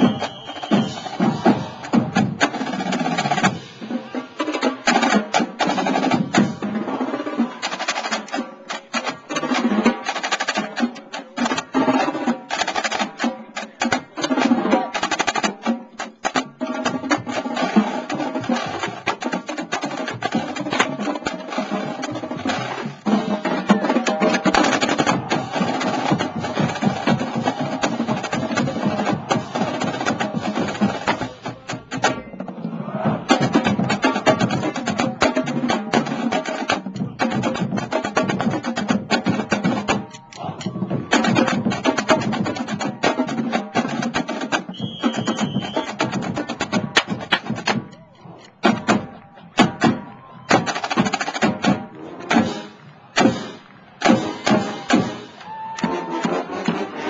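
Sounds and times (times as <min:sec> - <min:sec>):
marching snare drums: 0:00.0 - 0:57.0.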